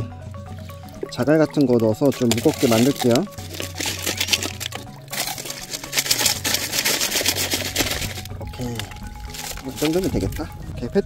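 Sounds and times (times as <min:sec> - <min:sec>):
background music: 0:00.0 - 0:11.0
gravel rattling in plastic bottle: 0:00.5 - 0:11.0.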